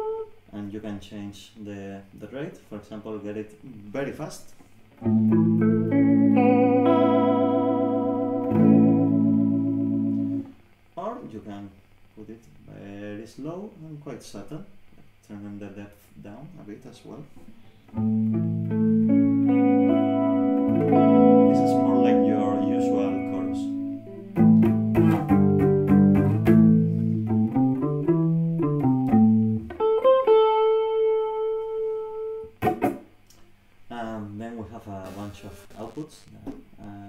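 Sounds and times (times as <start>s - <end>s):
clean electric guitar chords: 5.0s - 10.6s, 17.9s - 32.9s.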